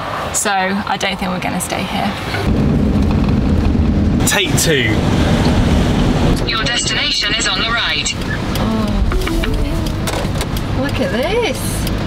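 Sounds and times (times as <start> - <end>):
van engine and road noise: 0.0 - 12.0.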